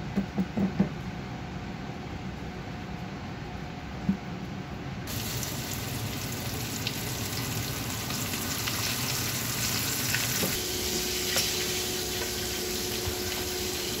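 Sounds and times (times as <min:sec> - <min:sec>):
steady low hum: 0:00.0 - 0:14.0
fish sizzling in hot oil: 0:05.1 - 0:14.0.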